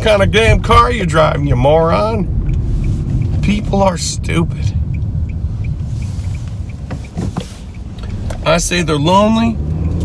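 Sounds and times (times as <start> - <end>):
car cabin road rumble: 0.0 - 10.0
faint ticks: 4.8 - 10.0.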